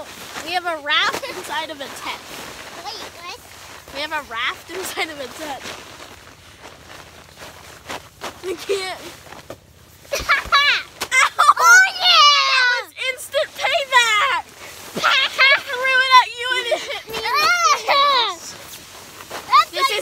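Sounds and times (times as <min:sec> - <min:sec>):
rustling and bumps: 0:00.0 - 0:20.0
children squealing and laughing: 0:10.1 - 0:20.0.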